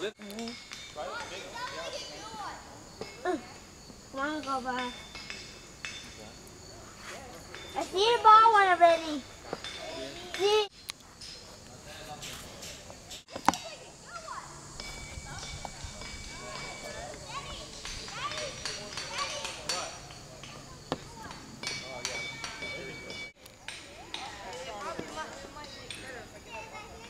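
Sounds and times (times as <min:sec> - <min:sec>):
distant voices of children and adults: 0:00.0 - 0:27.0.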